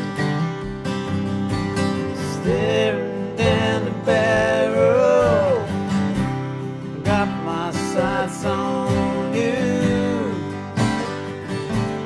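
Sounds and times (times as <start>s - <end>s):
acoustic guitar strumming: 0.0s - 12.0s
man singing: 2.1s - 5.9s, 7.0s - 10.7s.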